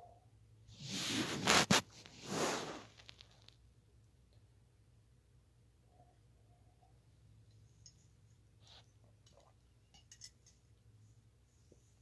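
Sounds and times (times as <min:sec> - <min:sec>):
fabric and fingers rubbing microphone: 0:00.8 - 0:03.1.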